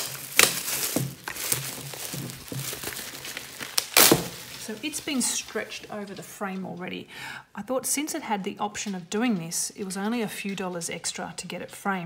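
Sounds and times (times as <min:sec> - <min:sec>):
plastic wrapping crinkling: 0:00.0 - 0:07.1.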